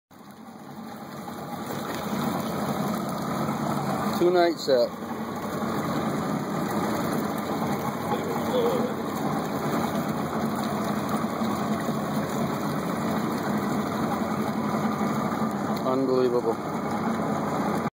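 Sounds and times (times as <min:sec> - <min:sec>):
boat engine idling: 0:00.2 - 0:17.9.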